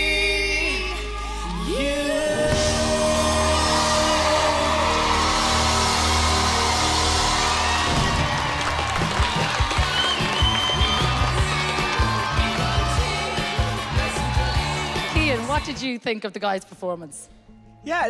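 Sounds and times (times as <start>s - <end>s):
pop duet with band: 0.0s - 5.9s, 10.8s - 15.7s
audience applause and cheering: 0.6s - 15.8s.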